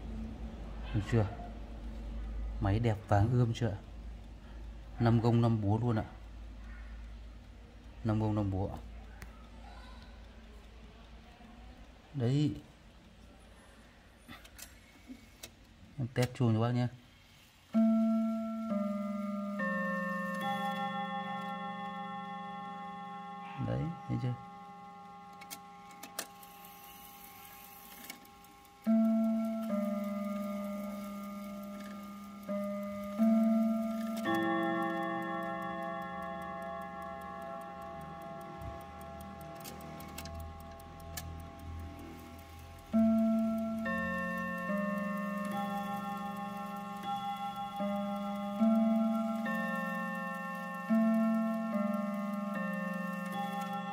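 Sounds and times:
clock chime on gong rods: 17.8 - 53.9.

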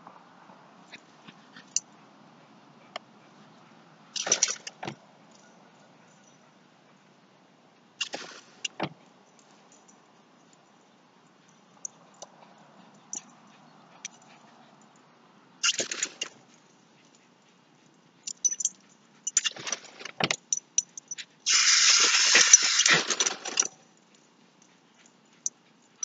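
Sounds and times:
sprinkler water spray hissing: 21.5 - 23.3.

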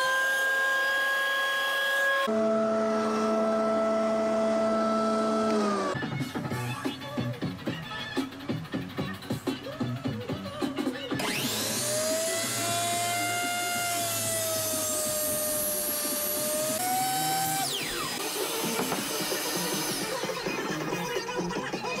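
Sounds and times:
miter saw motor whining: 0.0 - 6.0, 11.2 - 20.5
saw blade cutting wood: 11.2 - 21.0.

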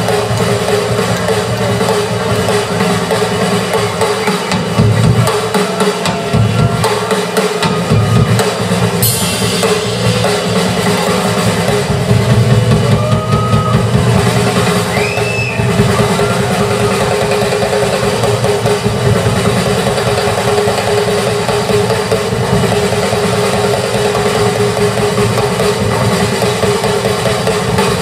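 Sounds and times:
drum kit: 0.0 - 28.0
live rock band playing: 0.0 - 28.0
high whistle-like glides: 14.6 - 16.5.

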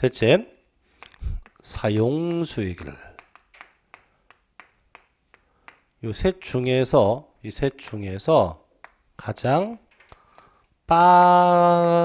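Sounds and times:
chalk tapping on blackboard: 1.3 - 6.5, 8.8 - 9.2.

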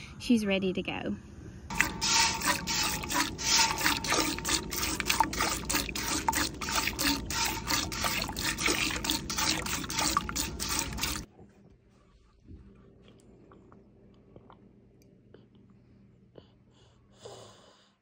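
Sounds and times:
milk squirting into pail: 1.7 - 11.3.

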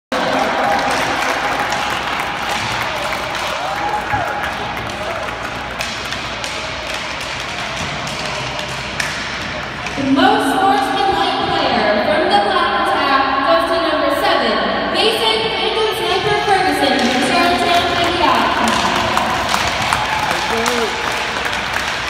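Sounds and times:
sharp taps and claps: 17.0 - 22.0.

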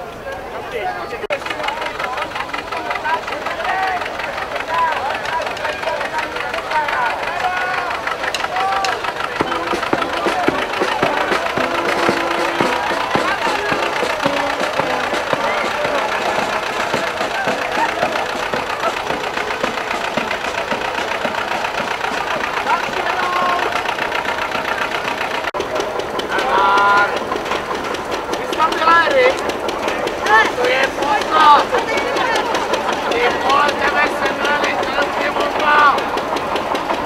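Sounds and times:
crowd chatter: 0.0 - 37.0
tractor engine running: 0.0 - 37.0.

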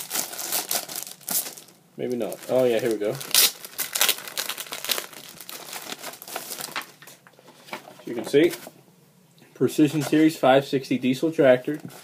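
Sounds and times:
paper packaging crinkling: 0.0 - 8.6.

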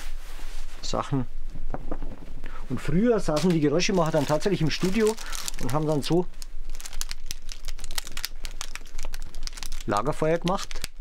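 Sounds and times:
cloths crumpled crackling: 3.2 - 11.0.

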